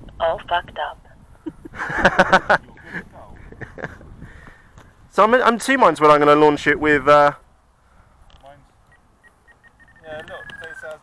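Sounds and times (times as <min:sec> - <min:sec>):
faint short electronic beeps: 0:08.9 - 0:11.0.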